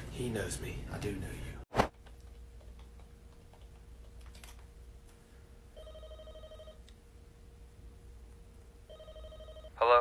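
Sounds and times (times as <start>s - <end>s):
faint steady hum: 0.0s - 10.0s
warbling telephone ring: 5.8s - 6.8s, 8.9s - 9.8s.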